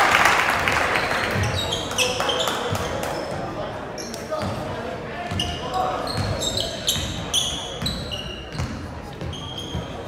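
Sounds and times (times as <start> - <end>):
sneakers squeaking: 0.9 - 10.0.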